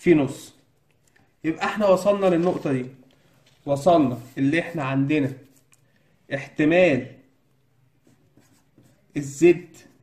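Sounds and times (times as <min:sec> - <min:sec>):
pen scratching on paper: 0:08.0 - 0:10.0.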